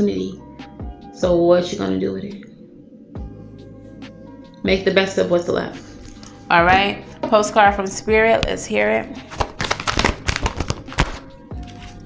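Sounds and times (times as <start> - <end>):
soft background music: 0.0 - 12.0
cards being shuffled: 9.3 - 12.0.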